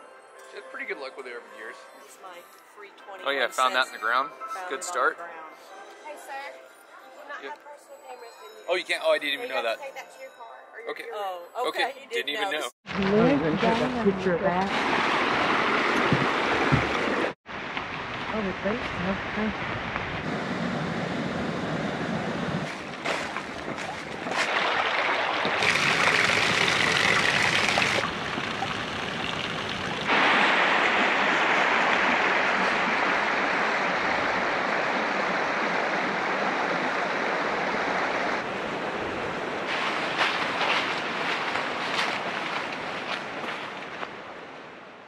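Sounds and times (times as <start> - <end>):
stream water rushing: 14.6 - 18.8, 20.2 - 44.8.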